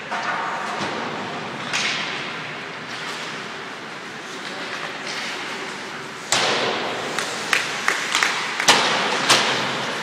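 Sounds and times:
arena background noise: 0:00.0 - 0:10.0
skate blades scraping on ice: 0:04.1 - 0:10.0.

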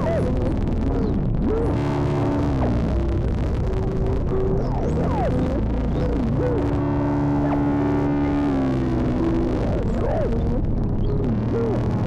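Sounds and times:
ambient synthesizer drone: 0:00.0 - 0:12.0.

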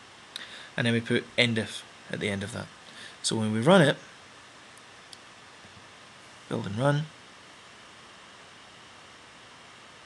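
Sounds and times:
faint microphone hiss: 0:00.0 - 0:10.0.

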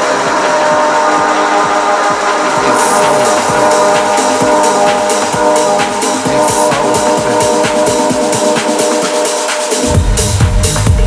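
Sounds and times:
held synth chord: 0:00.0 - 0:10.1
techno kick drum: 0:00.0 - 0:11.0.

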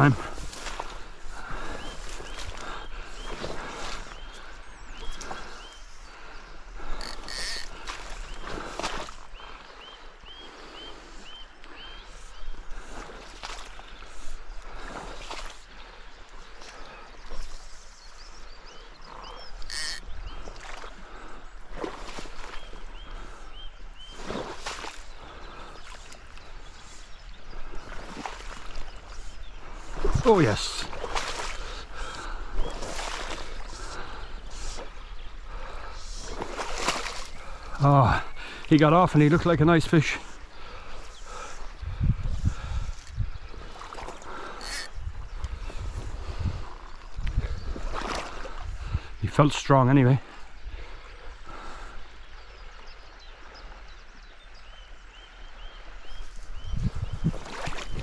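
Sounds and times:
rustling in wet grass: 0:00.0 - 0:53.8, 0:55.8 - 0:58.0.

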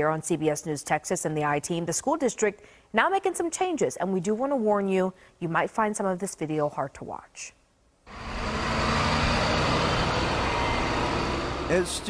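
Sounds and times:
bus engine driving past: 0:08.1 - 0:12.0
road noise: 0:08.1 - 0:12.0.

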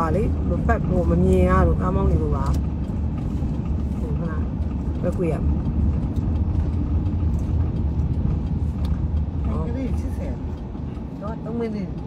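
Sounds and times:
car interior rumble: 0:00.0 - 0:12.0.

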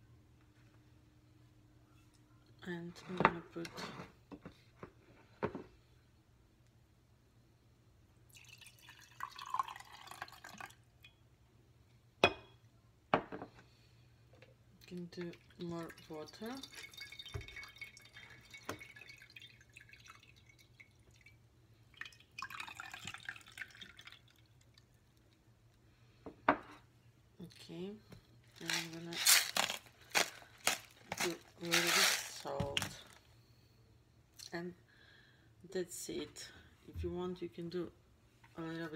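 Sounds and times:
juice pouring into a glass: 0:08.3 - 0:11.1, 0:15.4 - 0:25.2
plastic bag crinkling: 0:28.5 - 0:33.2.

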